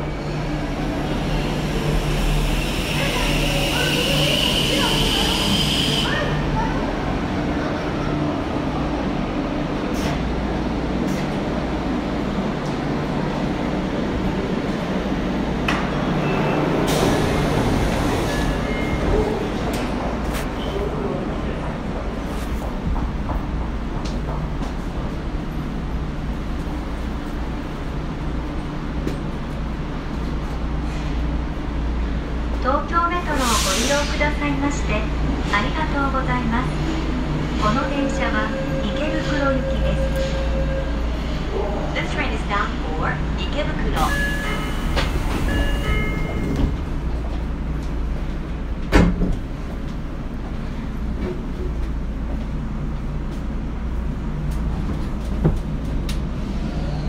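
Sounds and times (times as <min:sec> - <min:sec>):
train electrical hum: 0:00.0 - 0:57.0.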